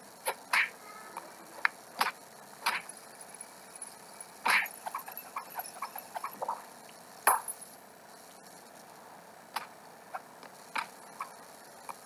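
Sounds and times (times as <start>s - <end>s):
small ticks and pops: 0.2s - 7.6s, 9.5s - 9.8s, 10.4s - 12.0s.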